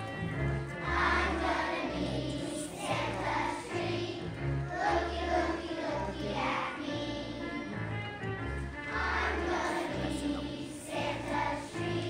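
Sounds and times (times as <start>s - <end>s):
children's choir singing: 0.0s - 8.0s, 8.8s - 12.0s
instrumental accompaniment low notes: 0.0s - 12.0s.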